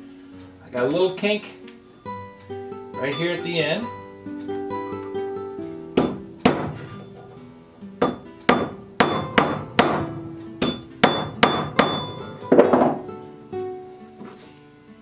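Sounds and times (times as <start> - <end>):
hammer striking steel: 6.0 - 7.3, 8.0 - 13.0.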